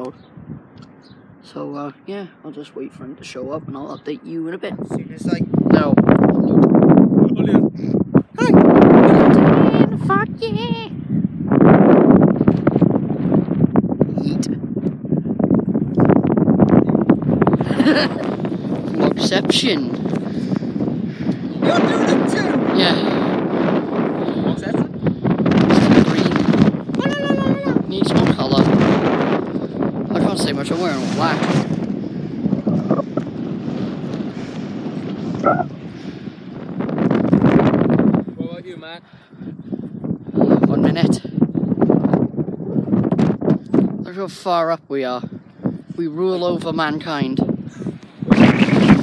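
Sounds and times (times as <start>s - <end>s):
wind buffeting microphone: 0.0s - 49.0s.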